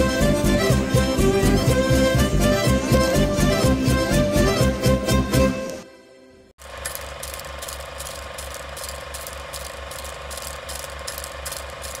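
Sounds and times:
film projector clattering: 6.6s - 12.0s.

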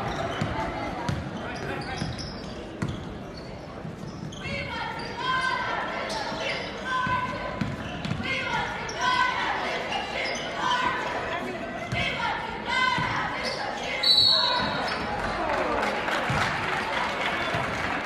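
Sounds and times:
voices echoing: 0.0s - 18.0s.

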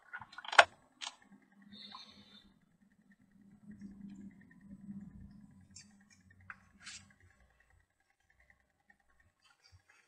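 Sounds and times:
cables and connectors clicking: 0.0s - 2.2s
faint low electrical hum: 0.0s - 10.0s.

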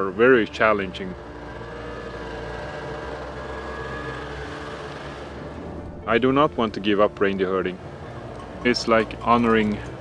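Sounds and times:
snowmobile engine running: 0.0s - 10.0s.

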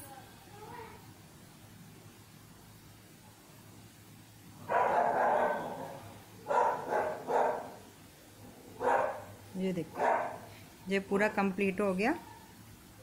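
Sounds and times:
dog barking: 4.7s - 7.8s, 8.8s - 9.3s, 10.0s - 10.5s.

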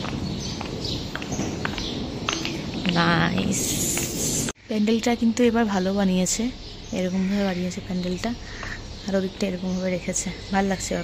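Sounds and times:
footsteps on concrete: 0.0s - 4.6s.

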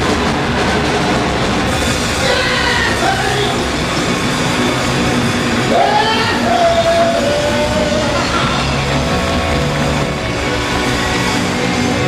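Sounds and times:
loud rock band playing: 0.0s - 12.0s.

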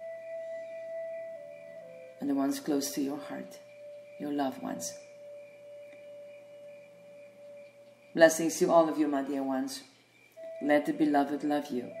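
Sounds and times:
steady ringing music tone: 0.0s - 12.0s.

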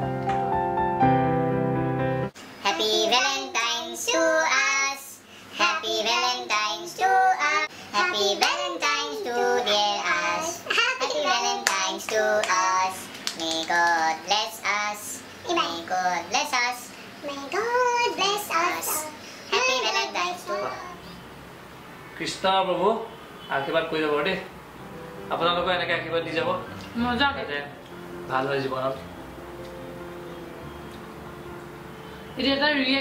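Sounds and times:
background music track: 0.0s - 2.3s, 24.8s - 33.0s
woman singing unaccompanied: 5.6s - 16.3s.

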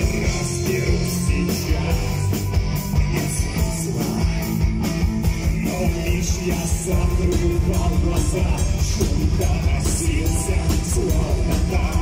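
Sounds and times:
bass guitar: 0.0s - 12.0s
drum kit beat: 0.0s - 12.0s
electric guitar: 0.0s - 12.0s.

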